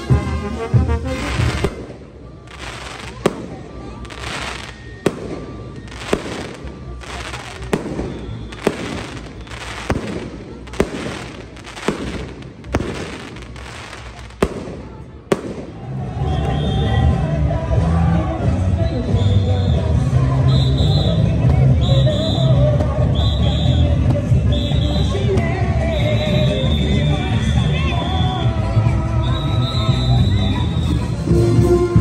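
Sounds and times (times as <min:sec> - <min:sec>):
band music: 0:00.0 - 0:10.2, 0:15.6 - 0:32.0
fireworks bangs with hiss: 0:00.0 - 0:16.9.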